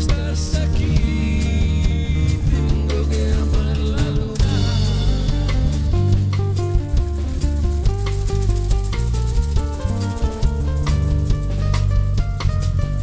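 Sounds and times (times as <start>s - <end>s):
bass guitar: 0.0s - 13.0s
drum kit: 0.0s - 13.0s
guitar lines: 0.0s - 13.0s.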